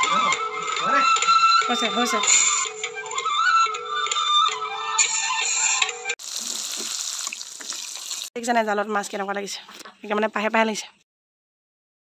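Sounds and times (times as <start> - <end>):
music: 0.0 - 6.2
running water hiss: 6.2 - 8.3.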